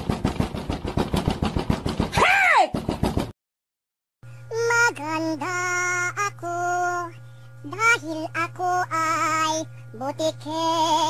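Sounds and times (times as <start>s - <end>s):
rapid rattle of sharp clacks: 0.0s - 2.2s.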